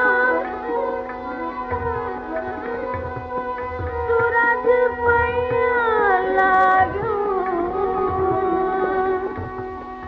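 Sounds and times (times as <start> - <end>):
vocal melodic line: 4.4 - 7.9.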